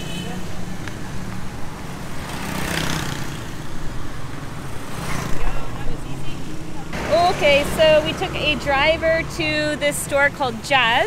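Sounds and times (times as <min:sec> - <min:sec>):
vehicle engines running: 0:00.0 - 0:11.0
vehicle passing: 0:00.4 - 0:11.0.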